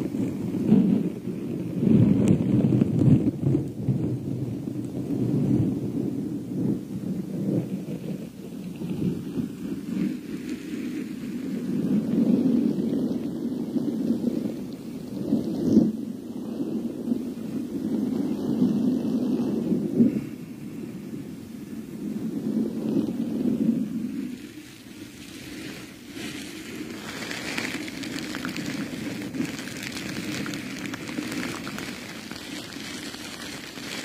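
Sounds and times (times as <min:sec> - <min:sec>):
rustling against microphone: 0:22.9 - 0:34.0.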